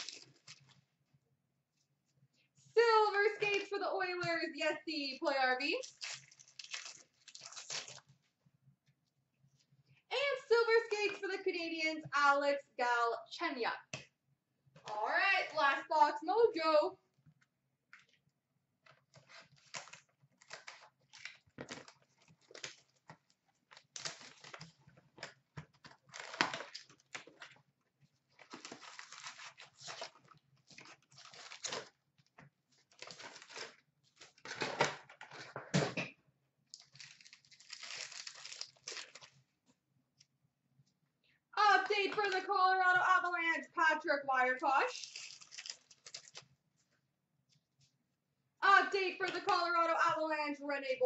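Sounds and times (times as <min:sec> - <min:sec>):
card packs tearing and crinkling: 0:00.0 - 0:00.8, 0:05.8 - 0:08.1, 0:19.2 - 0:23.0, 0:23.7 - 0:27.5, 0:28.4 - 0:32.0, 0:32.9 - 0:35.5, 0:36.8 - 0:39.4, 0:45.0 - 0:46.5.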